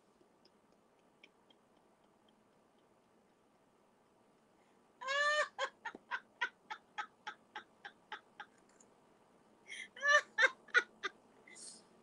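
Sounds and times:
woman laughing hard: 5.0 - 8.5, 9.7 - 11.2.

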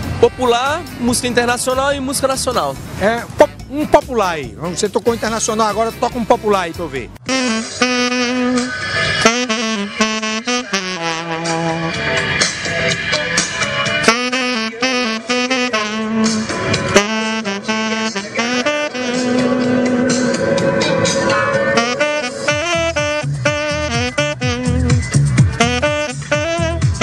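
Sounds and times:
electronic backing track with beat: 0.0 - 27.0
tenor saxophone melody: 3.2 - 4.1, 7.2 - 12.2, 13.9 - 27.0.

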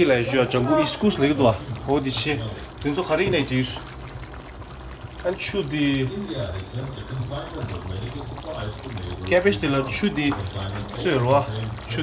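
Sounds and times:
gravy bubbling in a wok: 0.0 - 12.0.

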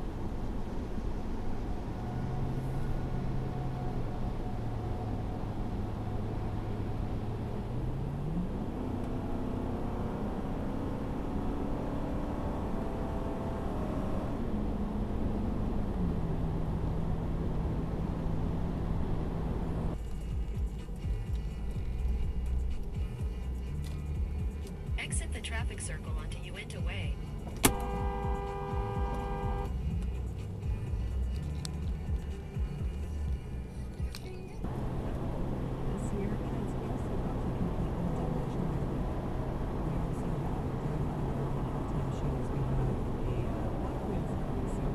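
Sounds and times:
car engine hum: 0.0 - 44.9
road noise inside car: 0.0 - 44.9
two-tone car horn: 27.6 - 29.8.

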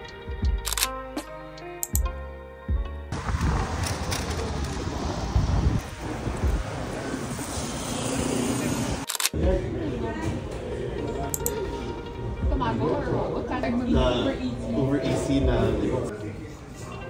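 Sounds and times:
traffic rumble: 3.1 - 16.9
hubbub of passers-by: 3.1 - 17.0
restaurant crowd chatter: 8.4 - 17.0.

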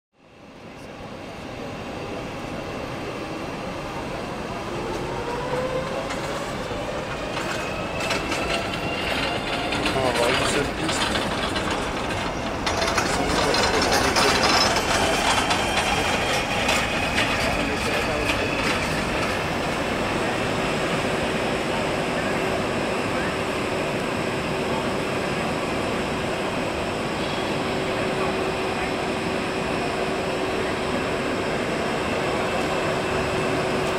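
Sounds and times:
jet engines rumbling: 0.3 - 33.9
rising turbine whine: 0.3 - 33.9.

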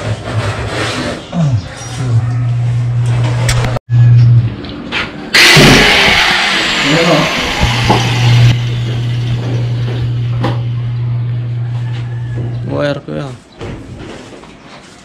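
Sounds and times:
electric welding machine humming: 5.6 - 11.7.

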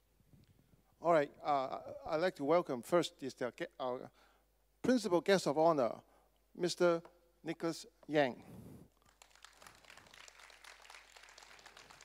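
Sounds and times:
audience applause: 9.0 - 12.0.

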